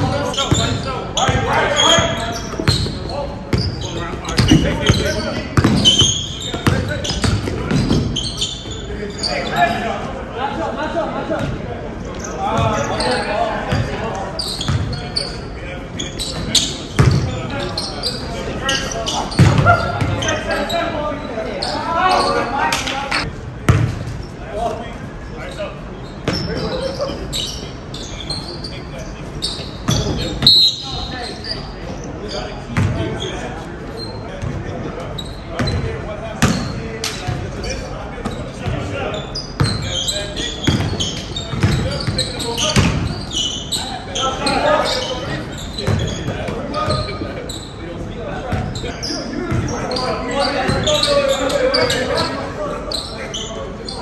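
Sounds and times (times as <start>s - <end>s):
players calling out: 0.0s - 23.3s, 24.2s - 54.0s
basketball bouncing on gym floor: 0.5s - 8.2s, 17.0s - 17.3s, 19.4s - 20.2s, 23.7s - 24.0s, 40.6s - 43.1s.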